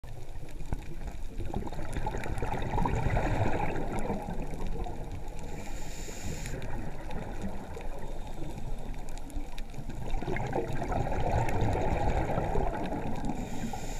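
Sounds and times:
low underwater rush: 0.0s - 13.9s.

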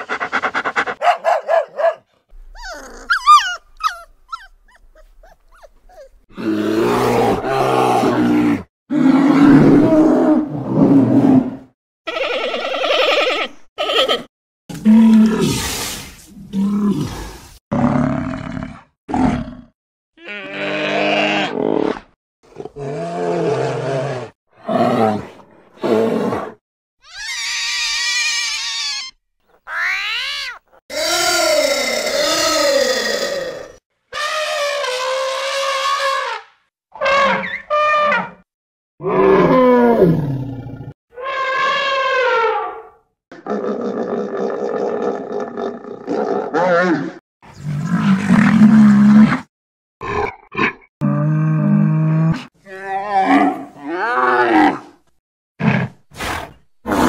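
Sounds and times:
high animal cry with wavering pitch: 2.4s - 10.1s, 12.1s - 14.3s, 20.2s - 21.6s, 27.0s - 36.4s, 37.0s - 38.4s, 41.1s - 42.9s
cartoon bear roar: 6.3s - 15.6s, 16.6s - 26.5s, 27.1s - 38.4s, 39.0s - 47.2s, 48.1s - 55.0s
elephant trumpeting: 37.0s - 38.4s.

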